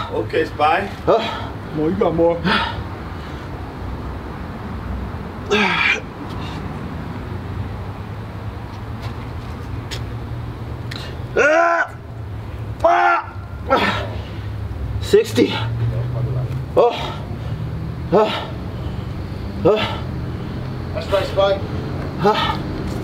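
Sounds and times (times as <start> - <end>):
man grunting: 5.5 - 6.1, 12.8 - 14.2, 16.7 - 17.4, 18.1 - 18.6, 19.6 - 20.1, 22.2 - 22.7.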